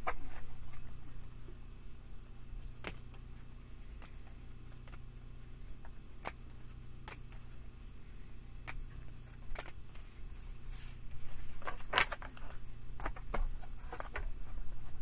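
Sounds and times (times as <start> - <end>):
cards shuffling on table: 10.7 - 15.0.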